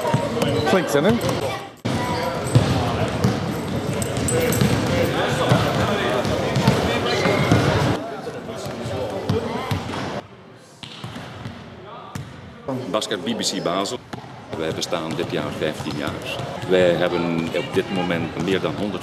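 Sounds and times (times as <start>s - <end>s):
volleyballs being hit and bouncing: 0.0s - 10.2s, 10.8s - 12.4s, 13.9s - 19.0s.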